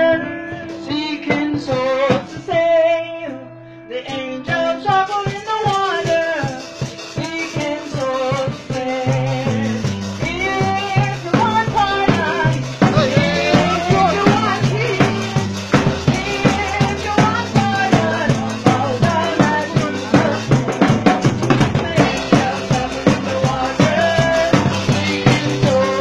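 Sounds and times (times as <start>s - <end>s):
percussive beat: 4.5s - 26.0s
gospel chorus singing: 11.4s - 20.9s, 21.6s - 26.0s
low bass line: 11.7s - 26.0s.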